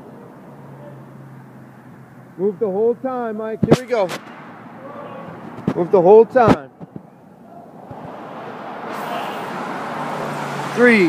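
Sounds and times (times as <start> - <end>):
road traffic noise: 0.0 - 11.0
vehicle passing: 0.0 - 11.0.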